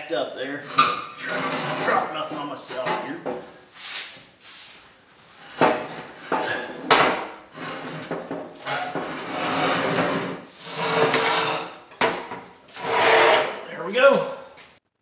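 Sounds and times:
metal scraping on concrete floor: 0.4 - 3.2, 5.3 - 13.8.

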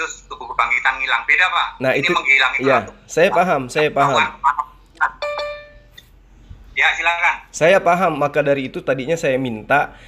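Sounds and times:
electronic notification chime: 5.2 - 5.9.

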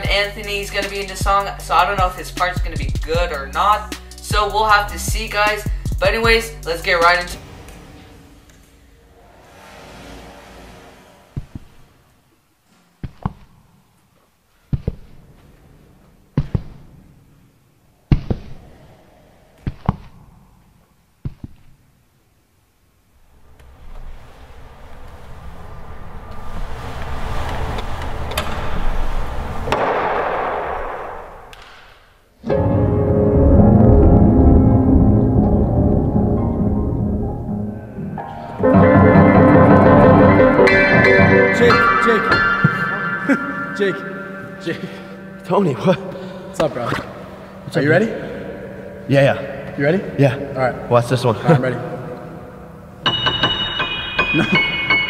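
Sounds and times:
faint low ambient whoosh: 22.8 - 53.1
piano music with deep low notes: 32.5 - 46.4, 53.0 - 55.0.

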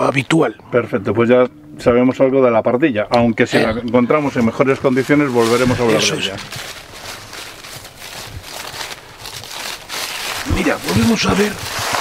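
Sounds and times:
footsteps on dry leaves: 4.5 - 12.0.

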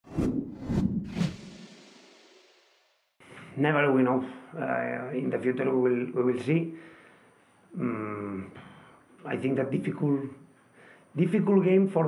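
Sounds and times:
quick whooshes: 0.0 - 2.9.

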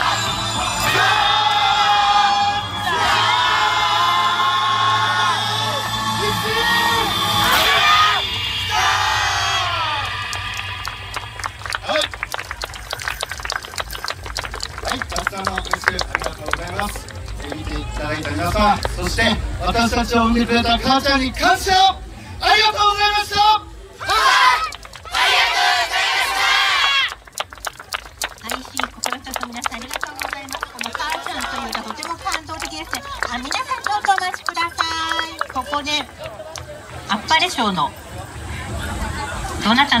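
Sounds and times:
group of dancers shouting: 24.0 - 27.1.

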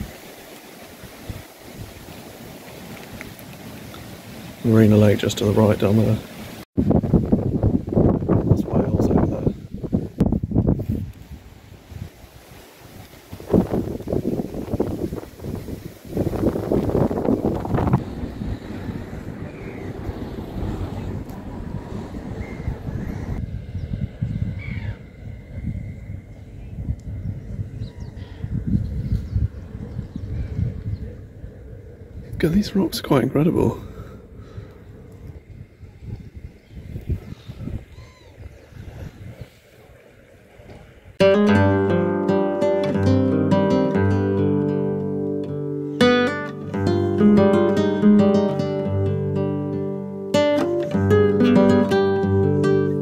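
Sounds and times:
wind buffeting microphone: 0.0 - 41.2.

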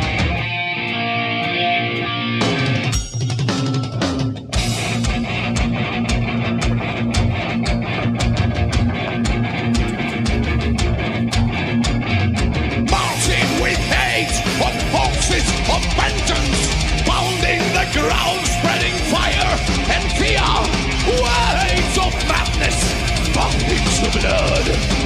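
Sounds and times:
bass guitar: 0.0 - 25.0
distorted electric guitar: 0.0 - 25.0
drum kit: 0.0 - 25.0.

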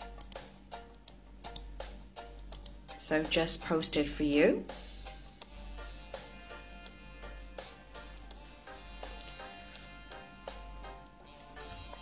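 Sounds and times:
faint music with ticking beat: 0.0 - 12.0
low steady hum: 0.0 - 12.0.

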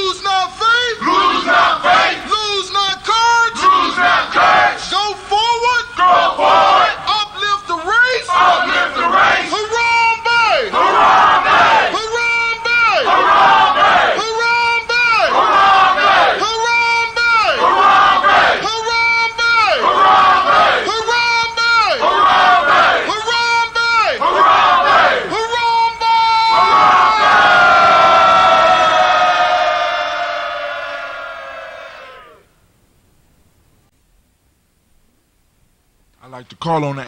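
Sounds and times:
crowd shouting in unison: 0.8 - 5.0, 6.0 - 7.2, 8.2 - 14.4, 15.0 - 16.7, 17.4 - 18.8, 19.6 - 23.4, 24.0 - 25.6, 26.2 - 32.5.

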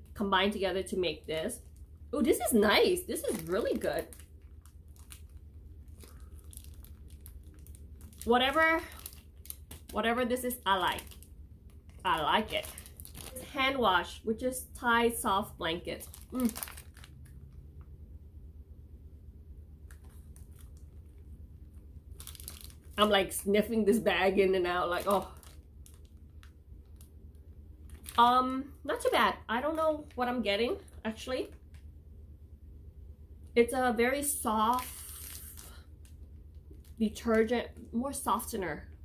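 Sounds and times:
plastic bag crinkling: 0.0 - 14.1, 15.7 - 17.8, 19.8 - 28.3, 34.2 - 37.5
steady low hum: 0.0 - 39.0
plastic pack crackling and clicking: 2.4 - 13.5, 16.0 - 17.6, 19.8 - 23.5, 24.7 - 27.2, 27.8 - 28.2.

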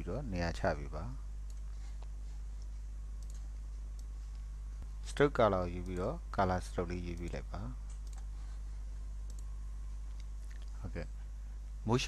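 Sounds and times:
low electrical hum: 0.0 - 12.0
computer mouse clicks: 1.5 - 4.4, 5.8 - 6.1, 7.0 - 8.3, 9.2 - 9.5.

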